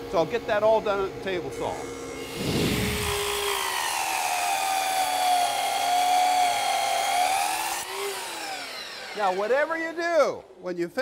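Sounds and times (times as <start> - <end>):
table saw cutting wood: 1.5 - 10.5.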